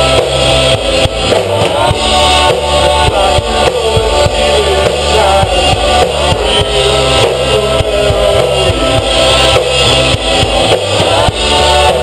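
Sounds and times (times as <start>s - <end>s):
bass guitar: 0.0s - 12.0s
drum kit: 0.0s - 12.0s
electric guitars: 0.0s - 12.0s.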